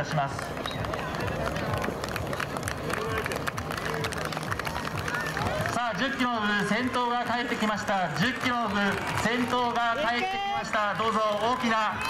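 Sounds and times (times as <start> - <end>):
background music: 0.0 - 12.0
people clapping: 0.0 - 12.0
spectators' voices: 0.0 - 12.0
loudspeaker announcement: 2.9 - 12.0.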